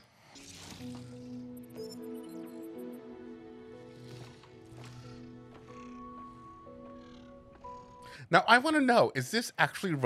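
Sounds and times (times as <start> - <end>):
soft film score chords: 0.0 - 10.0.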